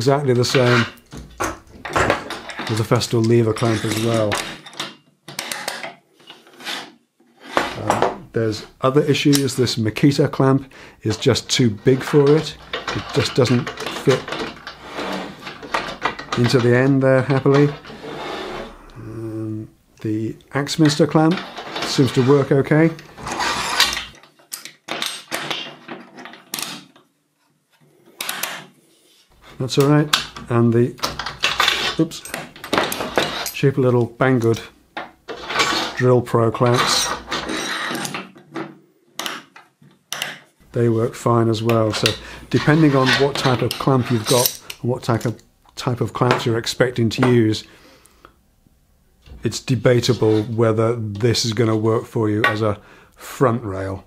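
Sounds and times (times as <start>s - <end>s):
metal scrapes and clicks: 0.4s - 7.8s, 20.8s - 25.6s, 35.3s - 38.3s, 41.9s - 44.8s.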